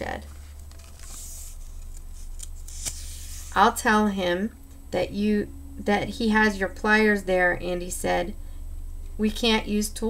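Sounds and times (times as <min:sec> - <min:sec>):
paper page rustling: 0:00.2 - 0:03.6.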